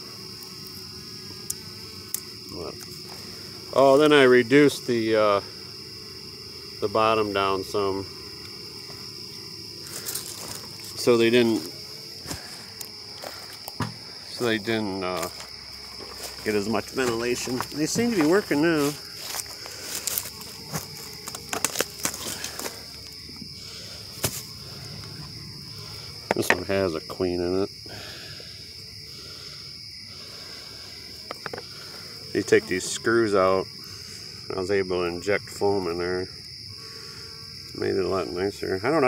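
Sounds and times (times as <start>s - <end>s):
crickets chirring: 0.0s - 39.0s
footsteps on gravel: 9.8s - 23.4s, 24.1s - 24.6s.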